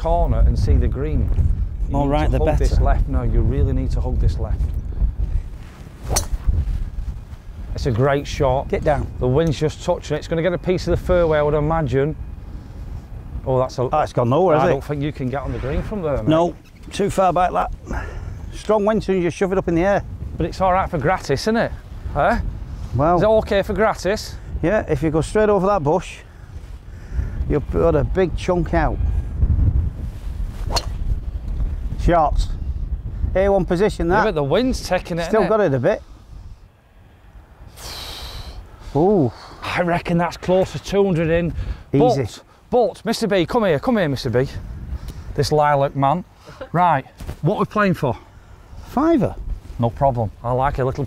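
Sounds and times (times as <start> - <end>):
wind on microphone: 0.0 - 42.3, 43.7 - 46.2, 48.6 - 51.0
golf club striking ball: 6.0 - 6.5, 30.7 - 31.1.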